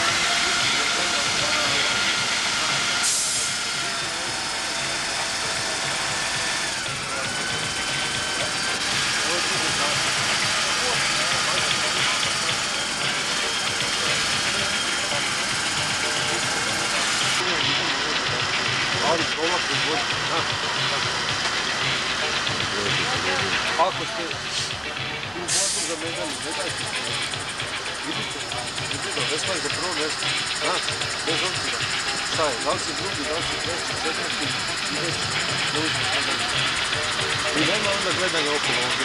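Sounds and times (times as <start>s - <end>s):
faint people talking: 0.0s - 39.0s.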